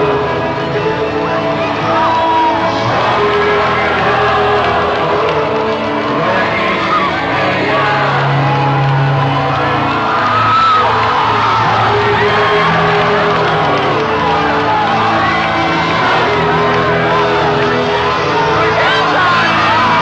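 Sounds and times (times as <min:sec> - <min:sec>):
crowd cheering: 0:00.0 - 0:20.0.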